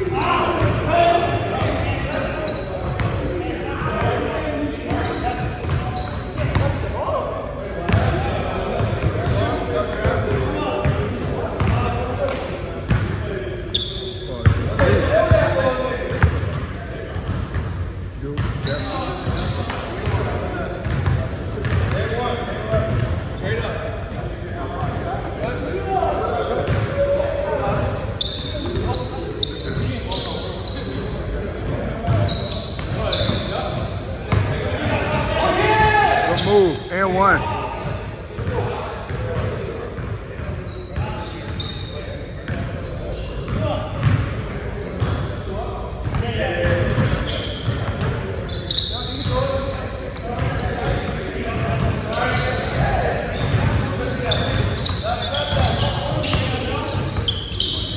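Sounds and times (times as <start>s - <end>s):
players' voices echoing: 0.0s - 57.9s.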